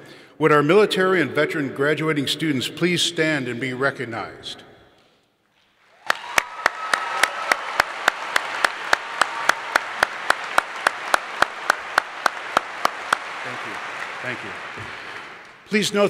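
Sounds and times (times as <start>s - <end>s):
crowd applauding: 5.8s - 16.0s
person clapping evenly nearby: 6.0s - 15.7s.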